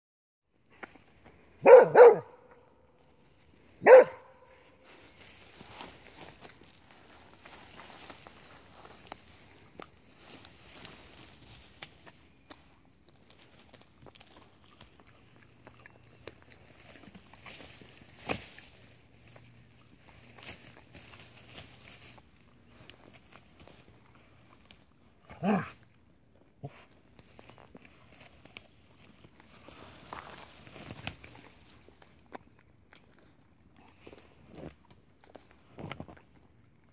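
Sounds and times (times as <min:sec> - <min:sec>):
rustling of shrubs: 0:00.7 - 0:36.7
dog barking: 0:01.6 - 0:02.6, 0:03.8 - 0:04.5.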